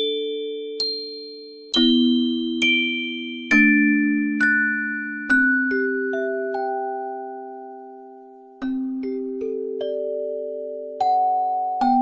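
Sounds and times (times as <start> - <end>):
music box slow melody: 0.0 - 12.0.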